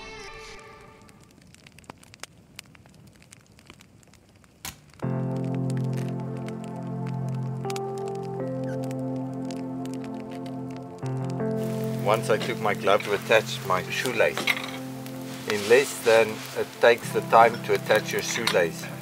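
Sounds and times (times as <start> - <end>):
campfire crackling: 0.0 - 19.0
background music with held chords: 5.0 - 19.0.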